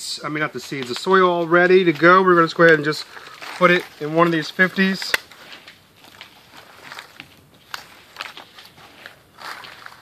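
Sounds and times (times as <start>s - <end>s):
hands crunching potting soil: 0.2s - 10.0s.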